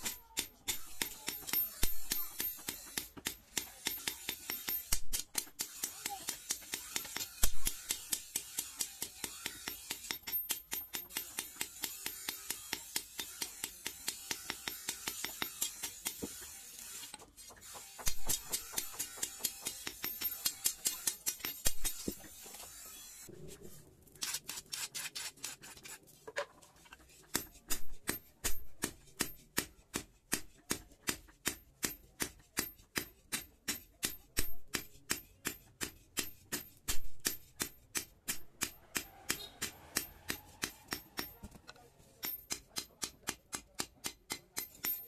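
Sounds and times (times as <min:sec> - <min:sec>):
hammer striking hot steel on anvil: 0:00.0 - 0:16.6, 0:17.9 - 0:22.5, 0:27.3 - 0:41.5, 0:42.2 - 0:45.0.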